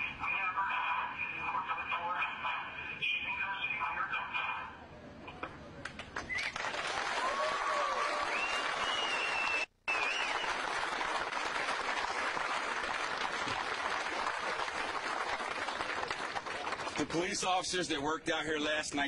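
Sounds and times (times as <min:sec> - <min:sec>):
crowd applauding: 0:05.9 - 0:17.3.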